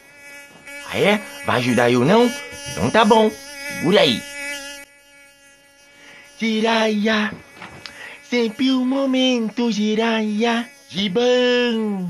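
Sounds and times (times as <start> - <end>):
mosquito buzzing whine: 0.0 - 12.0.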